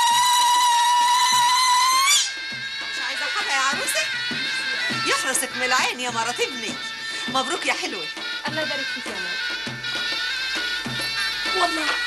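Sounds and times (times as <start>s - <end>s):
woman ululating: 0.0s - 2.4s
soft low drum beats: 1.3s - 12.0s.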